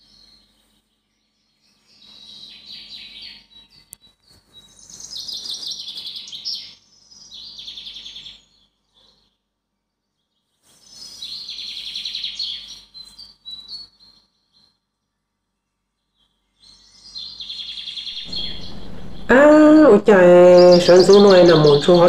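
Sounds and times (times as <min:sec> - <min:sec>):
birds chirping and trilling: 0:00.0 - 0:09.4, 0:10.2 - 0:14.8, 0:16.0 - 0:22.0.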